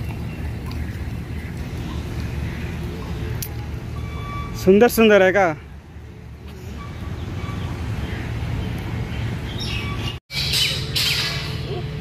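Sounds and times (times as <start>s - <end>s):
birds chirping and squawking: 0.0s - 3.4s, 5.8s - 12.0s.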